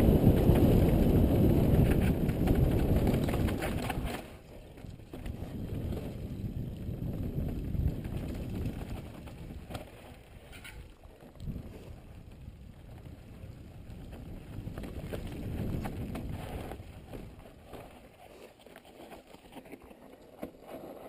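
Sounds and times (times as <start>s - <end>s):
wind buffeting microphone: 0.0s - 17.8s
bike tyres crunching on dirt: 0.0s - 21.0s.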